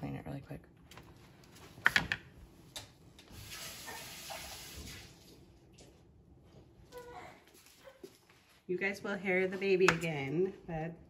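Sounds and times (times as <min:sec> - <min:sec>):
kitchen tap running: 0:03.3 - 0:05.5.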